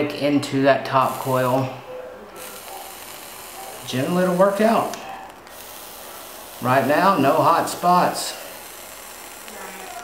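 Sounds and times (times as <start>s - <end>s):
vaporizer coil sizzling: 0.0s - 10.0s.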